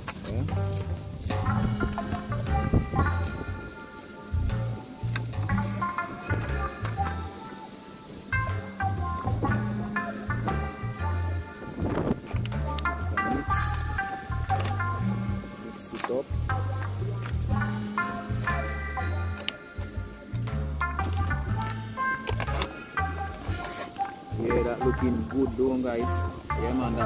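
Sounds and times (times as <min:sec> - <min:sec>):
background music with bass line: 0:00.0 - 0:27.0.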